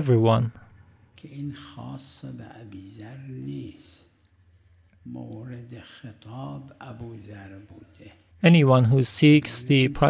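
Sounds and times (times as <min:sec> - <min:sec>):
man speaking: 0:00.0 - 0:00.6, 0:01.2 - 0:04.1, 0:05.1 - 0:10.0.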